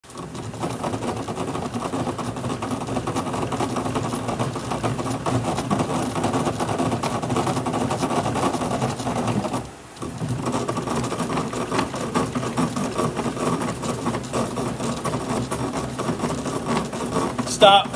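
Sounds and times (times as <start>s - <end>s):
bat rolling machine whir: 0.0s - 17.9s.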